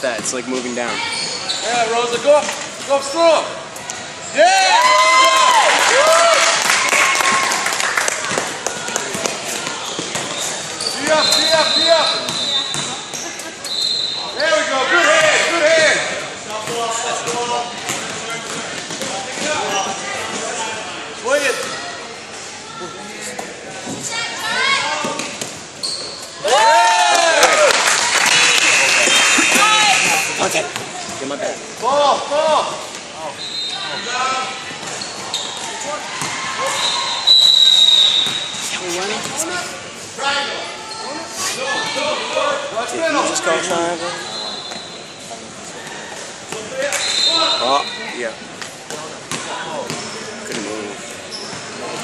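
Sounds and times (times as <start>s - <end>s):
basketball bouncing on court: 8.3s - 10.4s, 12.3s - 13.2s
players calling out: 25.8s - 31.0s
referee whistle blast: 36.7s - 38.5s, 46.9s - 48.0s.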